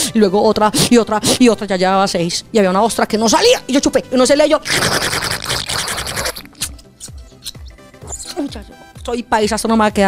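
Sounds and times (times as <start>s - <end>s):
woman slurping air: 4.7s - 7.7s.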